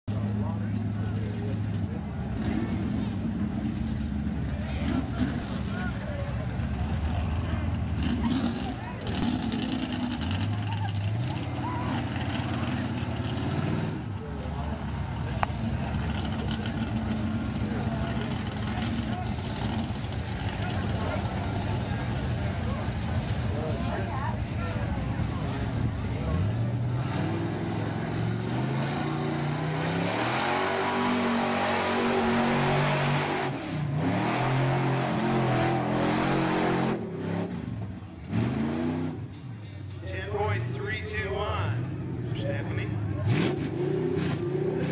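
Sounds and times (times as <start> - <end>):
truck engine revving: 0.1 - 39.4, 40.1 - 44.9.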